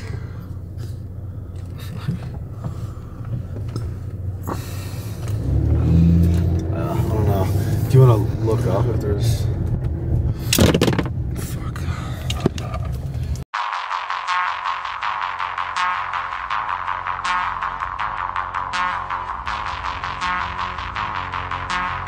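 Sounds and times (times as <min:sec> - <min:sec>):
engine and road noise in car: 0:00.0 - 0:13.5.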